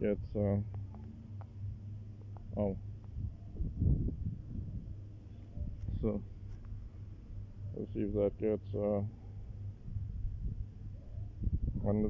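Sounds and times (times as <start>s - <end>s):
low rumbling on microphone: 0.0s - 12.0s
steady low hum: 0.0s - 12.0s.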